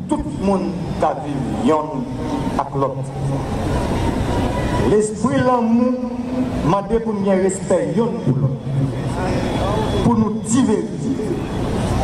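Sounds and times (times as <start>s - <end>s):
man preaching over public address: 0.0s - 3.4s, 4.8s - 11.4s.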